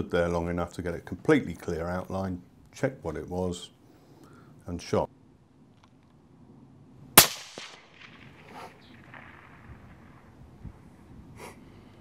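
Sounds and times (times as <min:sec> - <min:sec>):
rifle shot: 0:07.2 - 0:10.4.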